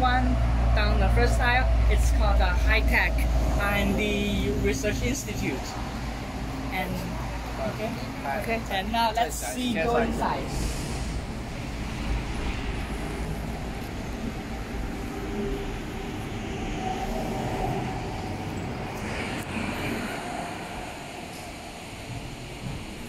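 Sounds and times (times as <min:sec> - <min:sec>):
wind on microphone: 0:10.2 - 0:23.0.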